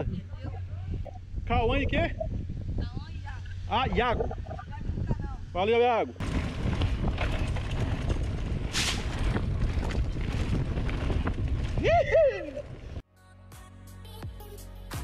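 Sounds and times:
wind rumble on microphone: 0:00.0 - 0:13.0
bike tyres rolling on dirt: 0:06.2 - 0:13.0
music: 0:13.0 - 0:15.0.

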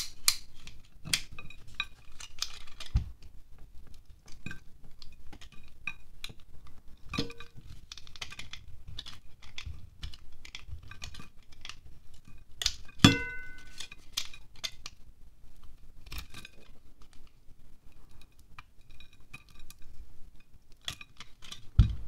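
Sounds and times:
ringing knock on glass plate: 0:13.1 - 0:13.7.

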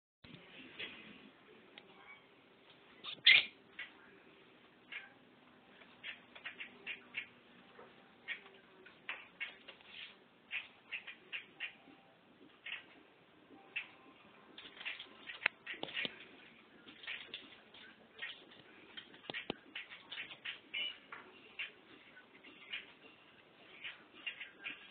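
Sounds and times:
lovebird chirping: 0:03.0 - 0:04.0, 0:19.3 - 0:24.9.

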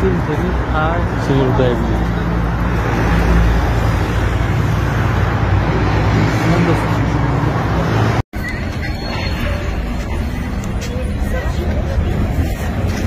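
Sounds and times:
traffic rumble: 0:00.0 - 0:13.0
faint voices: 0:08.4 - 0:13.0.

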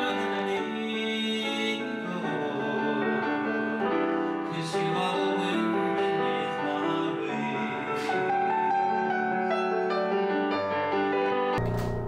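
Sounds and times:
grand piano melody over chords: 0:00.0 - 0:12.0.

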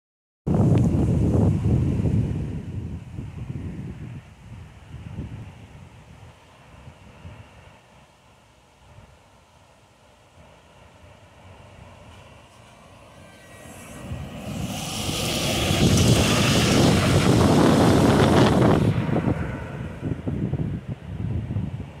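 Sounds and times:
bus passing by: 0:10.0 - 0:22.0
low rumbling: 0:12.5 - 0:22.0.

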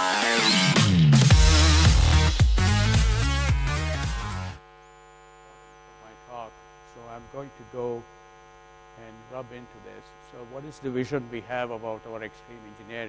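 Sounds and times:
electrical hum: 0:04.3 - 0:13.0.

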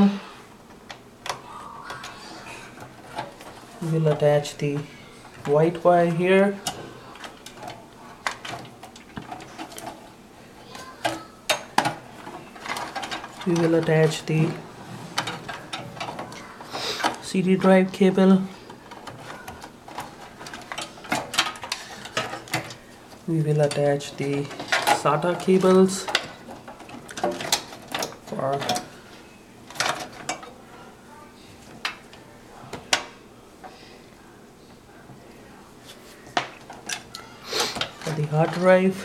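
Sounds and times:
cables rustling: 0:00.0 - 0:39.0.

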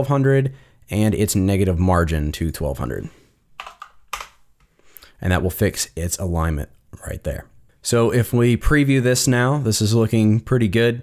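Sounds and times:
computer keyboard keystrokes: 0:03.6 - 0:04.4.

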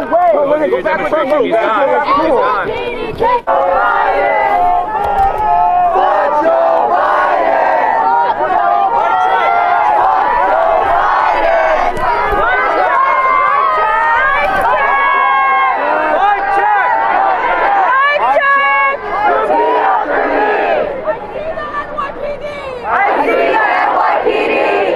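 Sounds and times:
crowd of protesters shouting: 0:00.0 - 0:24.9.

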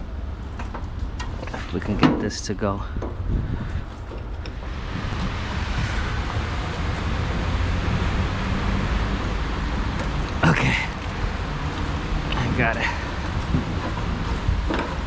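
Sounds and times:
street noise: 0:00.0 - 0:15.0
wind rumble on microphone: 0:00.0 - 0:15.0.

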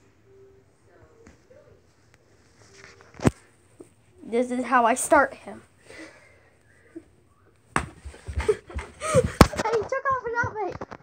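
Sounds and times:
faint rustling of phone being moved: 0:01.2 - 0:04.0.

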